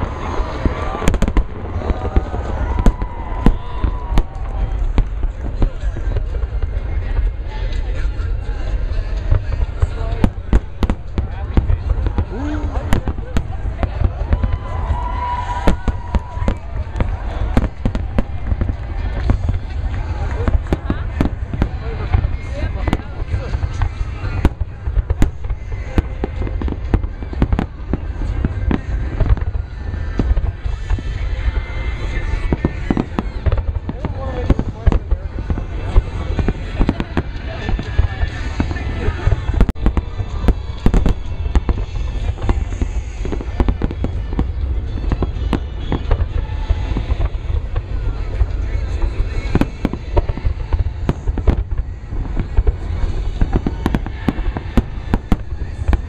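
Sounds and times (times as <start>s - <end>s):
crowd voices: 0.0s - 56.0s
low rumble: 0.0s - 56.0s.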